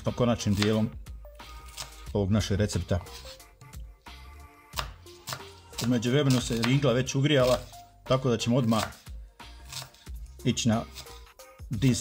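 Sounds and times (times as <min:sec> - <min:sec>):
soft background music: 0:00.0 - 0:12.0
knife chopping on wooden board: 0:00.2 - 0:02.1, 0:02.7 - 0:03.4, 0:04.7 - 0:07.8, 0:08.5 - 0:11.3.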